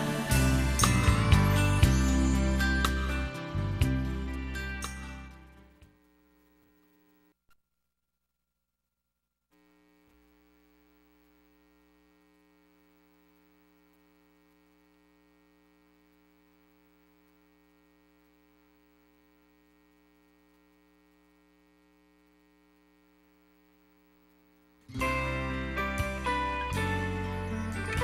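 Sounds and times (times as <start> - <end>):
faint electrical mains hum: 4.8 - 7.6, 9.5 - 28.0.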